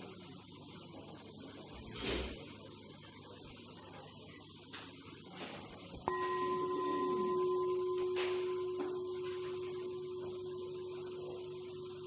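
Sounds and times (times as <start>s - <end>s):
metal singing bowl struck and ringing: 6.0s - 12.0s.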